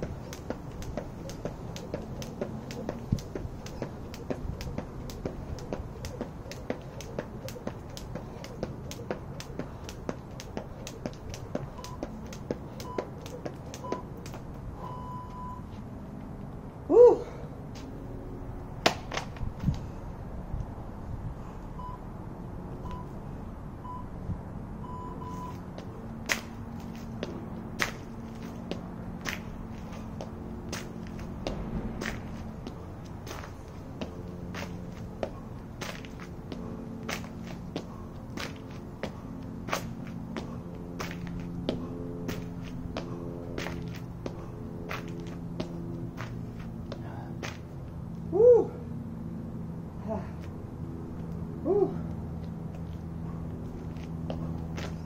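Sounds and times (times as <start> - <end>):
jump rope slapping asphalt: 0.0 - 14.8, 18.6 - 19.9, 25.5 - 48.2, 50.4 - 55.0
short electronic beeps: 14.8 - 15.7, 22.8 - 23.2, 24.8 - 25.6.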